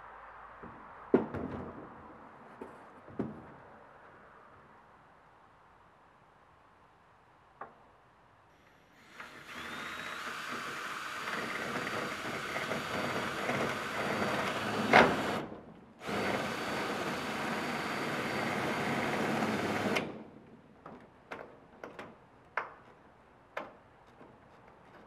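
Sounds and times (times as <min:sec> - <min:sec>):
power drill driving screw into metal: 0:09.0 - 0:15.4, 0:16.0 - 0:20.1.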